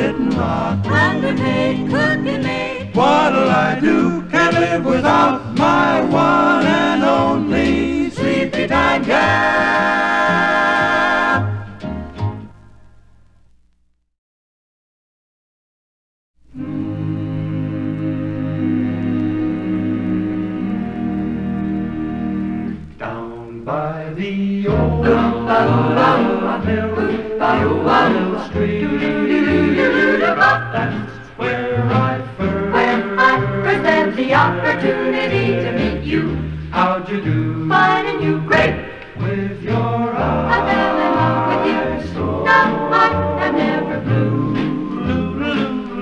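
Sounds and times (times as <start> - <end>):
swing choir and band: 0.0 - 12.4, 16.5 - 46.0.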